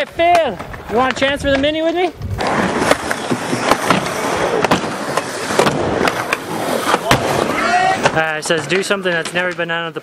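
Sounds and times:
skateboard wheels rolling: 0.0 - 9.5
skateboard clacks: 0.0 - 9.6.

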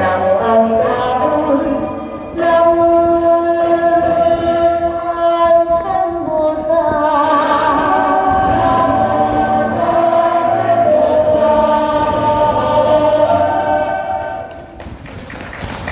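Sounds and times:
choral singing: 0.0 - 14.8.

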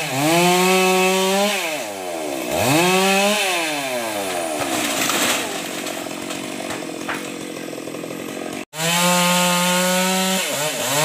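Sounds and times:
chainsaw engine revving: 0.0 - 11.0.

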